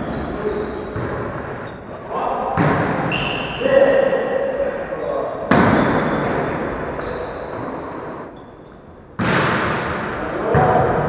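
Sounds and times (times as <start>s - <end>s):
players' voices: 0.0s - 8.3s, 9.9s - 11.0s
volleyball thump: 2.6s - 3.1s, 5.5s - 6.6s, 9.2s - 11.0s.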